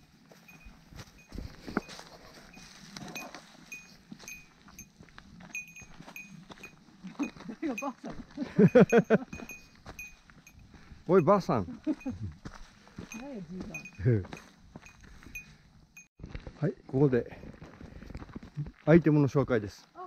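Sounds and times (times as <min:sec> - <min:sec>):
footsteps on leafy rocky trail: 0:00.0 - 0:20.0
small bell pinging: 0:00.4 - 0:12.4, 0:13.1 - 0:16.1
person speaking: 0:07.2 - 0:08.6, 0:13.1 - 0:14.4.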